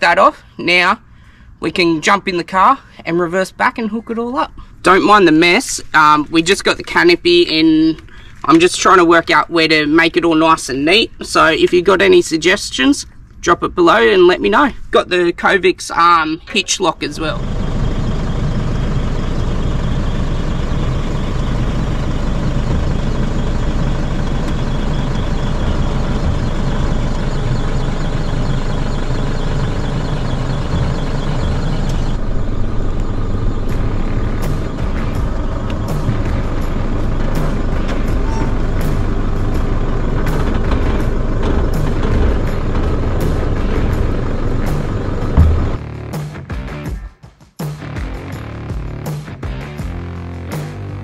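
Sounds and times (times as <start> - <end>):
diesel engine running: 16.4 - 46.8
music playing: 31.3 - 51.0.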